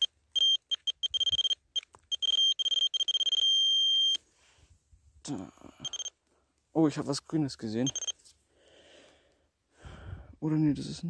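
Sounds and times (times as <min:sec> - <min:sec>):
pinpointer beeping: 0:00.0 - 0:04.2, 0:05.8 - 0:06.1, 0:07.8 - 0:08.2.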